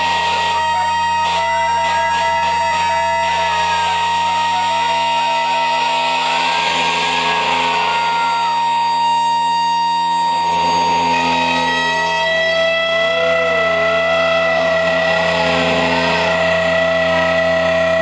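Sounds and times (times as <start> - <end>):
electronic noise music: 0.0 - 18.0
long high held tone: 0.0 - 18.0
saxophone: 0.0 - 18.0.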